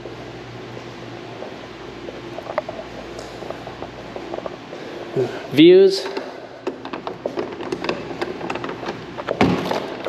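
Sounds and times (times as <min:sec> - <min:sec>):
light footsteps and handling clicks: 0:00.0 - 0:05.0, 0:05.9 - 0:10.0.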